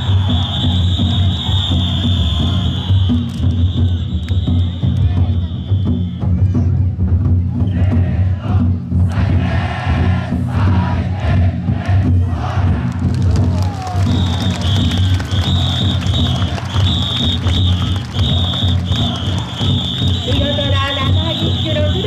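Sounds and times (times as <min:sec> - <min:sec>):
shrill whistle blasts: 0:00.0 - 0:06.4, 0:13.9 - 0:22.0
crowd shouting and chanting: 0:00.0 - 0:22.0
taiko drums beating: 0:00.0 - 0:22.0.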